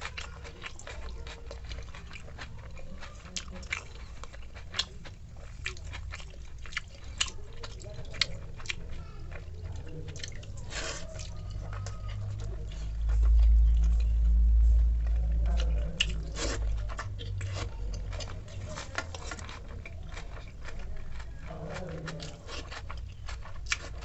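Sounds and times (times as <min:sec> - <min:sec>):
loud low rumble: 0:11.2 - 0:18.7.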